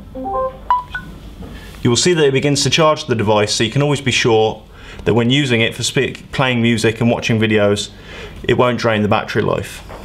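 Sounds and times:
electronic chime: 0.0s - 1.1s.

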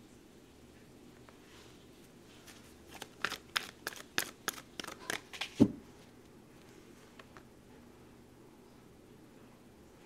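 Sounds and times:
cards being shuffled: 2.4s - 5.7s.

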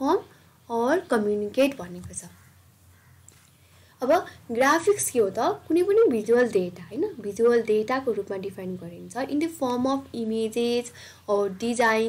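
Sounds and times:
person speaking: 0.0s - 2.4s, 4.0s - 12.0s
breathy hiss: 3.3s - 4.5s, 10.8s - 11.3s.

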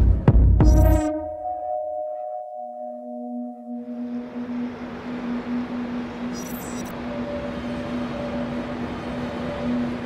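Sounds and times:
low electronic drone: 0.6s - 10.0s
distant traffic noise: 2.2s - 10.0s.

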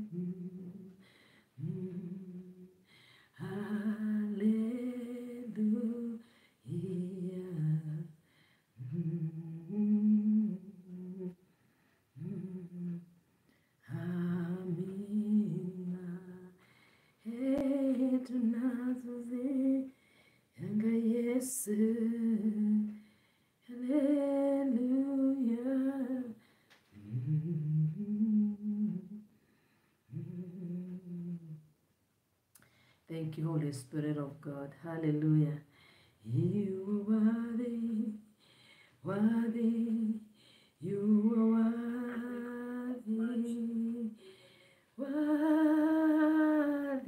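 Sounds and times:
woman humming: 0.0s - 1.0s, 1.6s - 2.8s, 8.8s - 11.4s, 12.2s - 13.2s, 13.9s - 16.5s, 27.0s - 29.2s, 30.1s - 31.6s, 36.3s - 38.1s.

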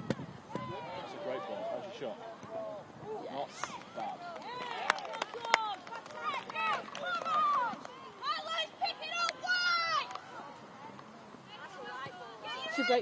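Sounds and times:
players and spectators shouting: 0.5s - 2.0s, 2.6s - 10.1s, 11.6s - 13.0s.

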